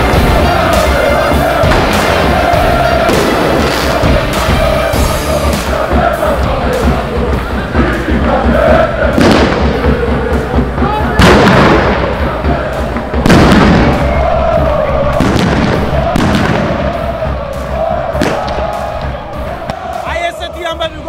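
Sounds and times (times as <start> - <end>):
firecrackers banging: 0.0 - 4.9, 9.1 - 20.0
football crowd chanting: 0.0 - 21.0.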